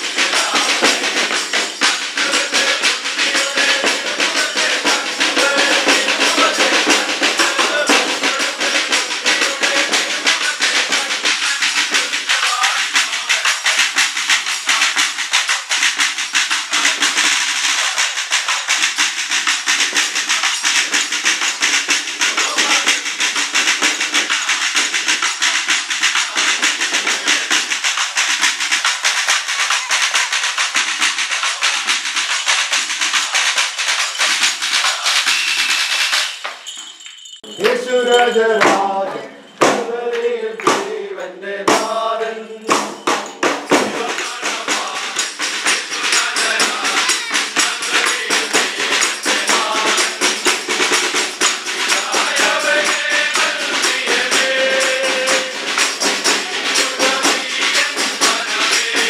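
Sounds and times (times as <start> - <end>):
carolers singing: 0.0 - 36.1, 37.4 - 59.0
drum played with sticks: 0.0 - 36.8, 37.4 - 59.0
hand clapping: 0.0 - 41.1, 42.7 - 59.0.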